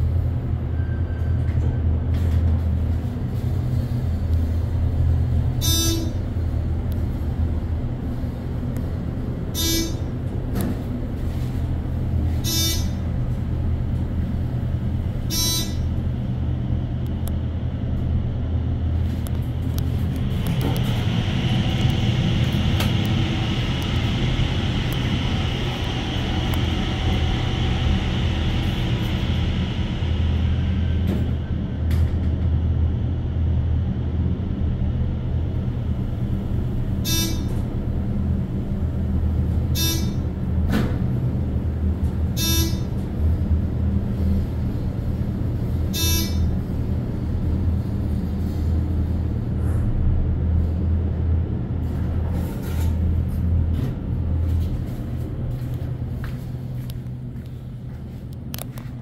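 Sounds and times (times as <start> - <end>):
elevator low hum: 0.0 - 59.0.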